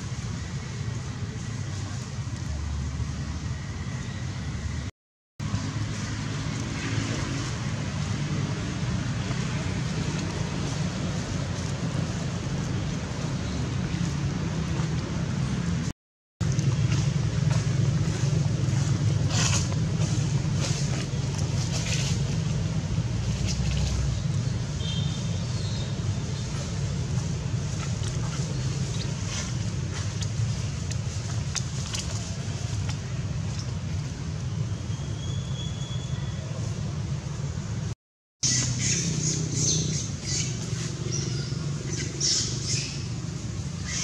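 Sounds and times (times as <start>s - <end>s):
low outdoor rumble: 0.0s - 44.0s.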